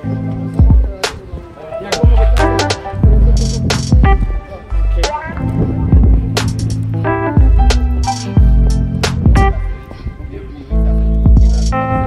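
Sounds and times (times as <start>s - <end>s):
music with heavy bass beat: 0.6s - 1.0s, 2.0s - 9.8s, 11.2s - 12.0s.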